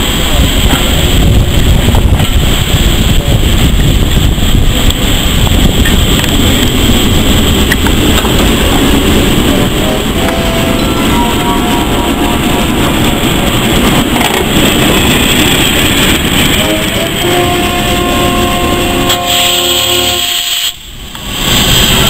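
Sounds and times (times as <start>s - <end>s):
steam locomotive hissing: 0.0s - 22.0s.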